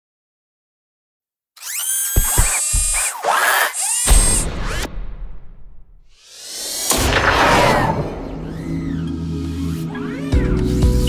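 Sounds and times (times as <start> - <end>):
mechanical whirring: 1.6 - 11.0.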